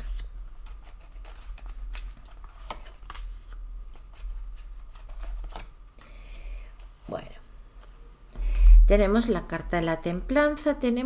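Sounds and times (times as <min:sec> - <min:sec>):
cards snapping and rustling: 0:00.0 - 0:06.1.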